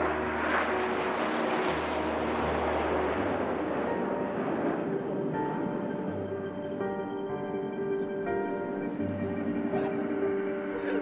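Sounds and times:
jets flying past: 0.0s - 7.2s.

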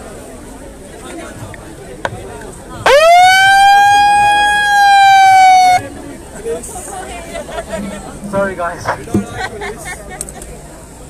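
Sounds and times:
crowd chatter: 0.0s - 11.0s
megaphone siren: 2.9s - 5.8s.

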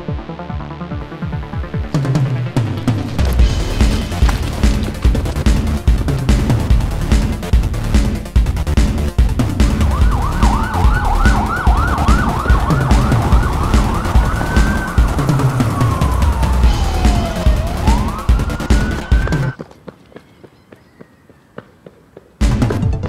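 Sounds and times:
electronic music with heavy beat: 0.0s - 19.6s, 22.4s - 23.0s
police siren: 9.6s - 19.6s.

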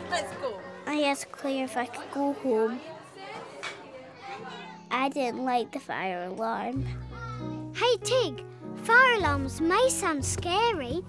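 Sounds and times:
children chattering: 0.0s - 7.7s.

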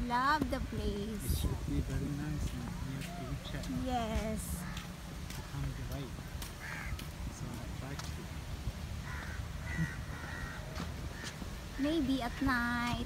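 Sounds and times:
steady low rumble: 0.0s - 13.0s
crow cawing: 4.6s - 5.5s, 6.6s - 7.1s, 9.0s - 11.4s.

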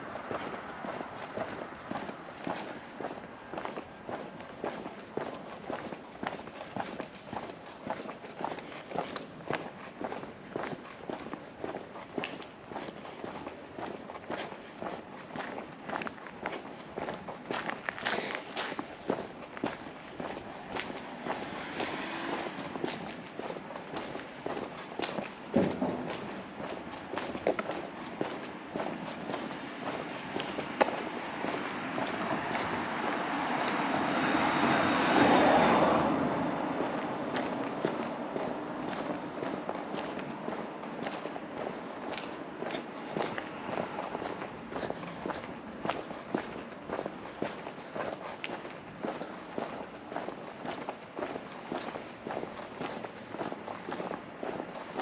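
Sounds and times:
car approaching: 0.0s - 55.0s
footsteps on pavement: 0.0s - 55.0s.

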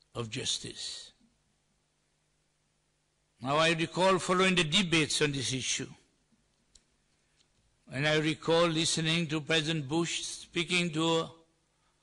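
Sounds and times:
man speaking: 0.1s - 1.2s, 3.4s - 6.1s, 7.9s - 11.5s.

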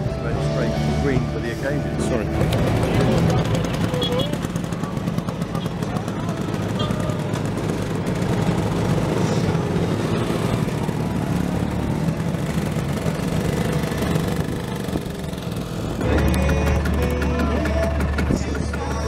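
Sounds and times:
music: 0.0s - 3.4s, 16.0s - 19.0s
motor scooters revving: 0.0s - 19.0s.

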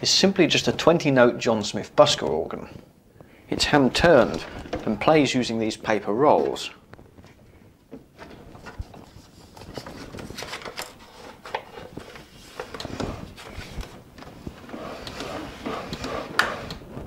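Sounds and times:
paper rustling: 8.2s - 17.0s.

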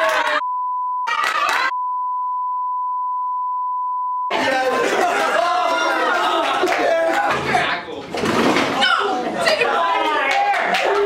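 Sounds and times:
group shouting and laughing: 0.0s - 0.4s, 1.1s - 1.7s, 4.3s - 7.8s, 8.8s - 11.0s
censor bleep tone: 0.4s - 1.1s, 1.7s - 4.3s.

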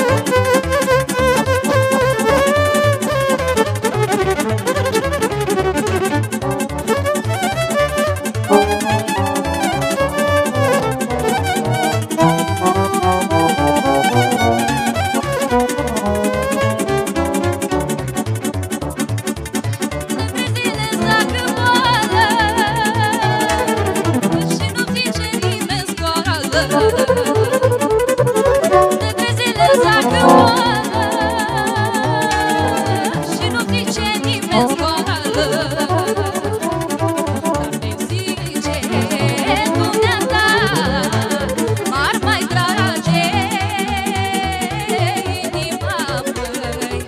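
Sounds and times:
accordion: 0.0s - 47.0s
violin playing fast folk dance: 0.0s - 47.0s
electronic keyboard: 26.8s - 37.7s.

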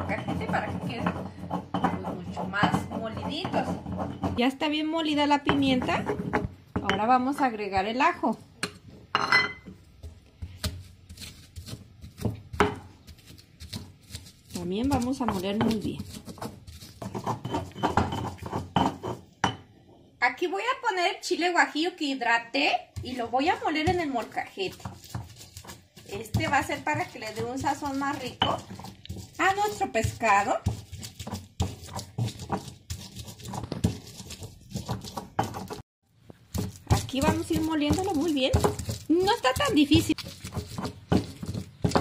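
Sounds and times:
stone pestle grinding in mortar: 0.0s - 7.5s, 10.6s - 19.6s, 23.0s - 42.0s.

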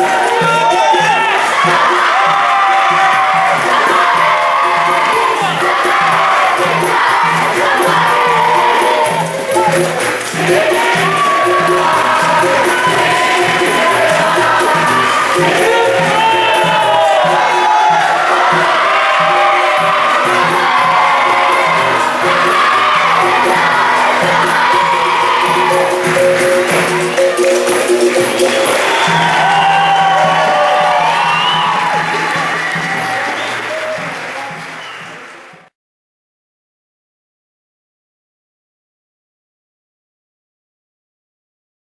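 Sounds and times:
crowd singing together: 0.0s - 33.5s
hand percussion: 0.0s - 35.7s
people clapping: 0.0s - 35.7s.

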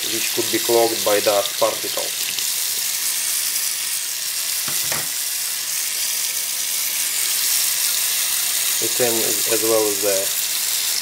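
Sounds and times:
tap water running: 0.0s - 11.0s.

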